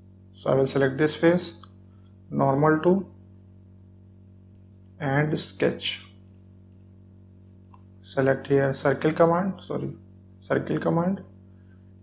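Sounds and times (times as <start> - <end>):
low electrical hum: 0.0 - 12.0
computer mouse clicks: 6.2 - 7.0.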